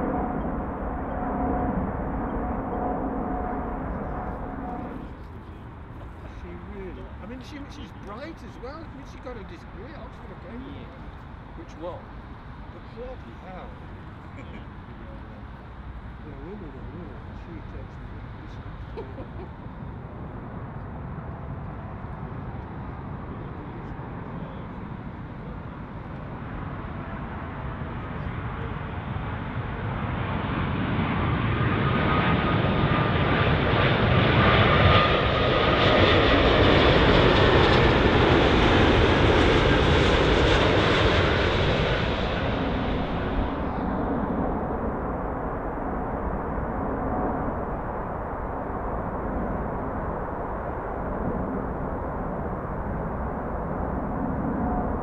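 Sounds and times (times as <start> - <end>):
faint steady whine: 0.0 - 31.2, 41.5 - 55.0
jet airliner passing: 0.0 - 55.0.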